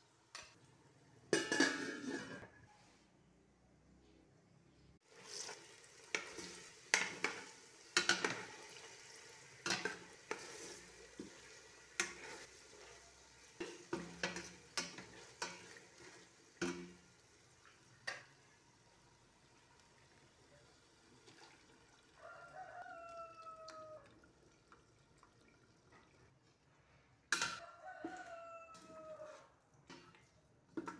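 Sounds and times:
rooster crowing faintly: 2.2s - 3.2s, 22.2s - 24.2s, 27.4s - 29.6s
food sizzling in a pan: 5.0s - 24.0s.

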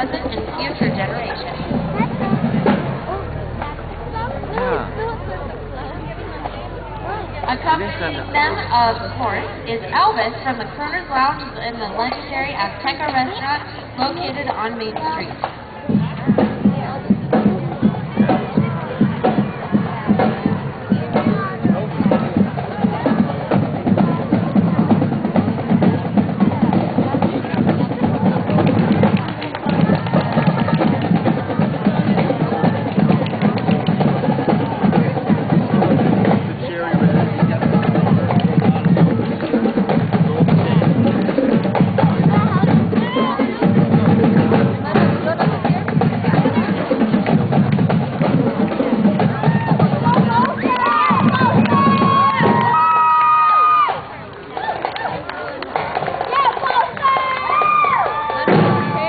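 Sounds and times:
marching drumline: 0.0s - 59.0s.

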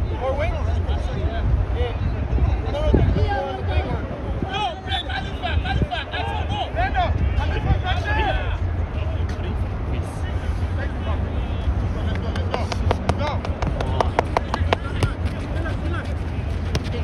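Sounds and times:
steady low rumble: 12.0s - 17.0s
players shouting: 12.3s - 15.6s.

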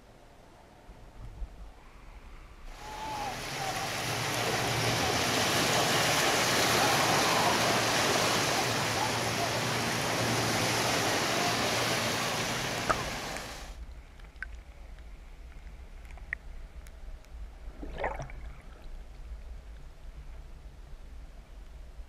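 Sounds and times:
surf water churning underwater: 2.7s - 14.6s, 17.6s - 19.1s.

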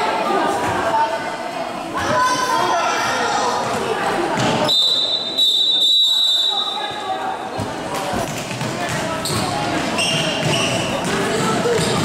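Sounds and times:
spectators chatting: 0.0s - 12.0s
referee's whistle blast: 4.7s - 6.9s.

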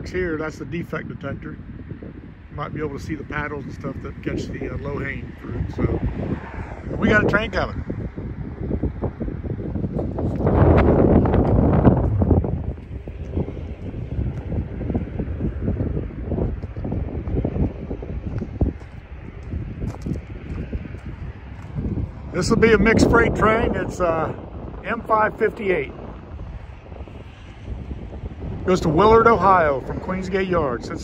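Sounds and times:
wind buffeting microphone: 0.0s - 31.0s
footsteps on gravel: 11.4s - 15.2s, 16.3s - 22.3s.

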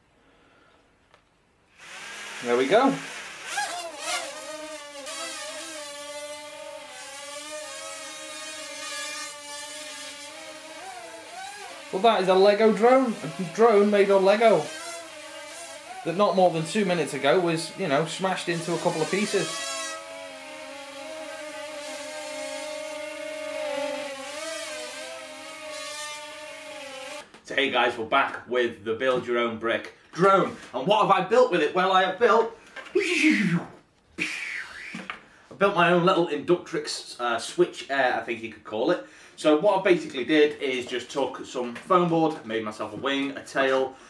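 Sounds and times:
small drone motors whining: 6.4s - 12.4s.

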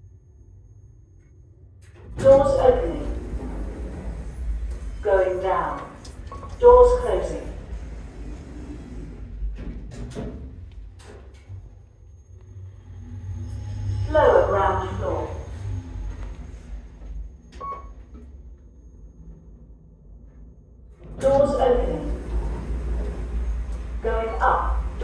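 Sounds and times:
lift travelling low rumble: 0.0s - 25.0s
lift doors sliding shut: 1.8s - 18.6s, 20.9s - 25.0s
recorded woman's voice announcement: 2.2s - 3.4s, 5.0s - 7.6s, 14.1s - 15.6s, 21.2s - 22.4s, 24.0s - 25.0s
brief tone: 17.4s - 18.2s.

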